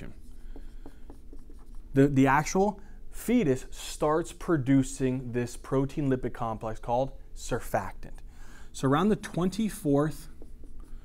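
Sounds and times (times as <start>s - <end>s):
marker writing on a whiteboard: 0.0s - 4.7s, 9.0s - 11.0s.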